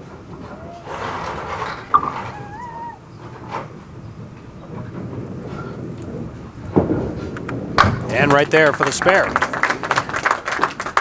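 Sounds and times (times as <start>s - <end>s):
wavering squeal: 0.0s - 7.5s
bowling ball rolling: 0.0s - 11.0s.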